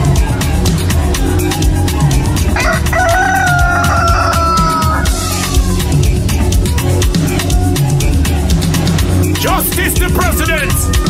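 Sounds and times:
reggae music with steady beat: 0.0 - 11.0
rooster crowing: 2.6 - 5.6.

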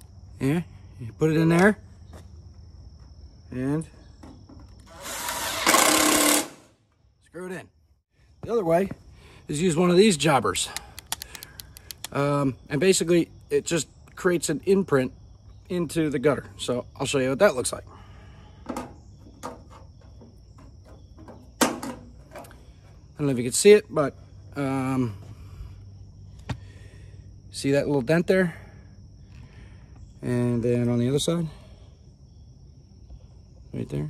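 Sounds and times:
insect chirring: 9.0 - 34.0.

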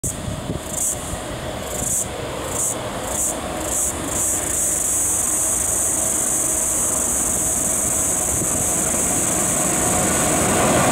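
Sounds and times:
distant freight train rumble: 0.0 - 10.9.

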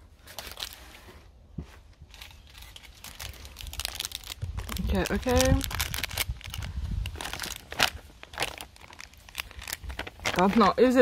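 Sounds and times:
plastic wrappers crinkling: 0.2 - 1.0, 2.0 - 11.0.

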